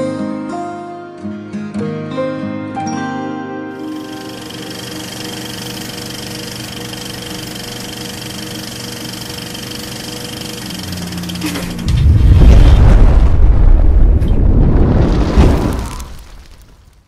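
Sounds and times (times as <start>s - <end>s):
music: 0.0s - 12.1s
film projector whirring and rattling: 3.8s - 11.9s.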